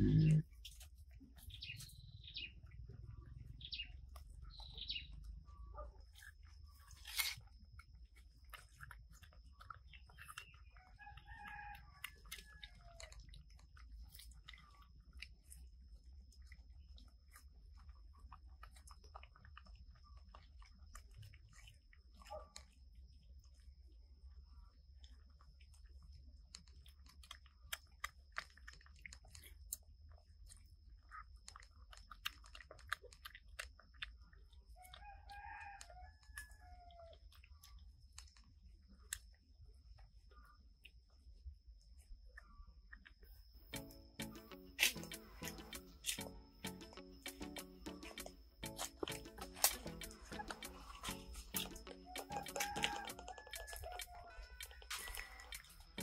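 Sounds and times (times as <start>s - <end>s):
monkeys chewing clicks: 6.2s - 15.9s, 26.5s - 35.1s, 43.7s - 56.0s
faint rooster crowing: 10.6s - 13.4s, 34.7s - 37.5s, 49.8s - 56.0s.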